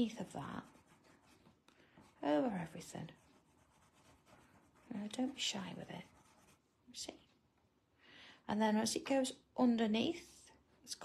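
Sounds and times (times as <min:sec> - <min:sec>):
chalk pencil scratching: 0:00.0 - 0:06.8.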